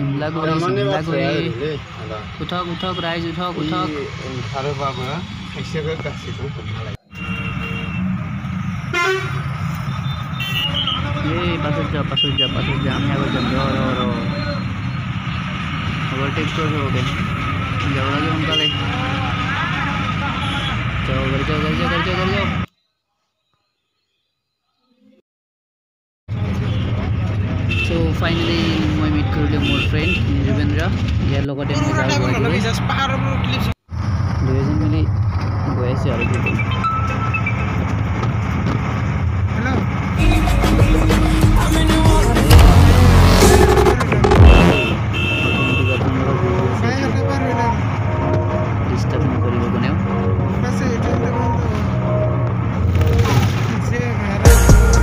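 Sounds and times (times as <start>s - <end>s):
people talking: 0.0s - 7.0s, 10.8s - 14.6s, 16.1s - 22.7s, 26.6s - 33.7s, 34.4s - 36.7s, 42.5s - 52.0s, 53.6s - 54.9s
bus rumbling: 0.0s - 22.7s, 26.3s - 55.0s
background music: 40.2s - 44.8s, 47.0s - 53.2s, 54.5s - 55.0s.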